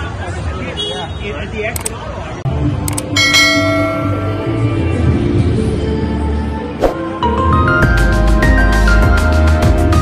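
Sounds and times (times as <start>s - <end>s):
bell chime ringing: 3.1s - 5.0s.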